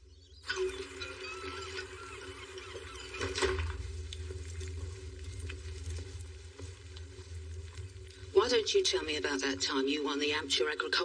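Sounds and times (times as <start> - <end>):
low rumble and wash: 3.7 - 11.0.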